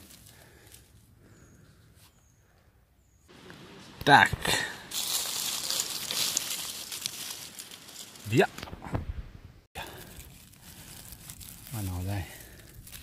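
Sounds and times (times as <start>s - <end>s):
dry leaves rustling and crackling: 0.0s - 1.0s, 4.6s - 8.6s, 9.8s - 13.0s.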